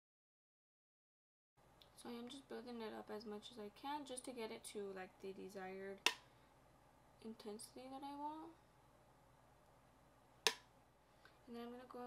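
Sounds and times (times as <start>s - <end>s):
sharp click of makeup tools: 10.5s - 10.7s.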